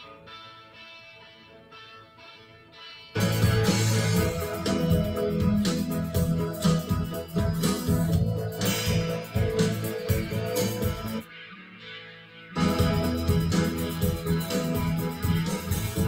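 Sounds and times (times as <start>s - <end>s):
band recording over studio monitors: 0.0s - 16.0s.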